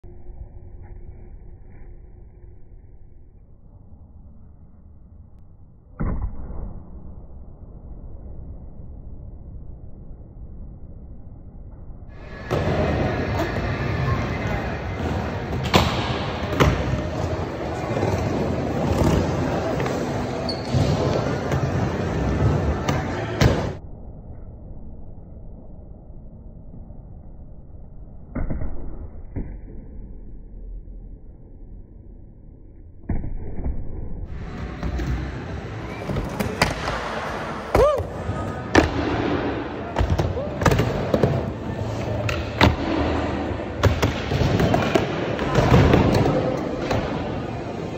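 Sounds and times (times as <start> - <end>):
skateboard wheels rolling: 12.2 - 23.5.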